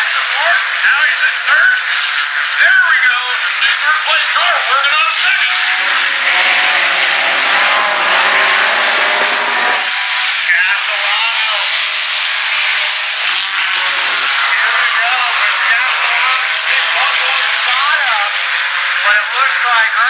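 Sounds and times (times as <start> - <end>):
nearer car engine: 0.0 - 20.0
race car engines droning: 0.0 - 20.0.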